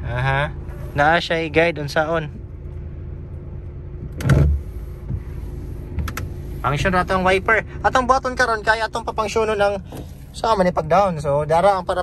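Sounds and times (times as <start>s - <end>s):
low cabin hum: 0.0s - 12.0s.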